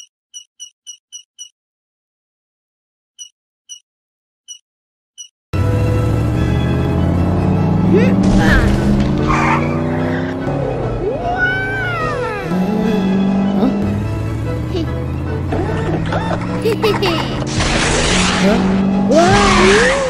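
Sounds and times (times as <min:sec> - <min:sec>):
background music: 0:05.6 - 0:20.0
cartoon go-kart engines: 0:05.6 - 0:20.0
tire skids: 0:06.0 - 0:12.1, 0:13.8 - 0:20.0
short wordless voice sounds: 0:12.0 - 0:13.9.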